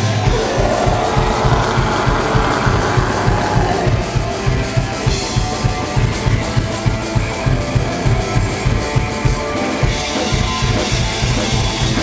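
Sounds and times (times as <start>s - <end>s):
metal band playing: 0.0s - 11.3s.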